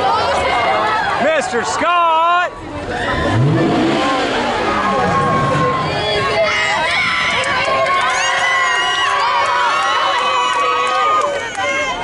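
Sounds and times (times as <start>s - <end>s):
girls cheering and shouting: 2.4s - 12.0s.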